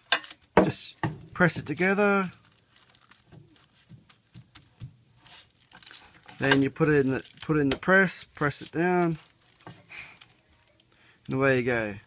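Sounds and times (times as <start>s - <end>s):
baking paper rustling: 0.0s - 12.0s
plastic disc being handled: 0.1s - 11.4s.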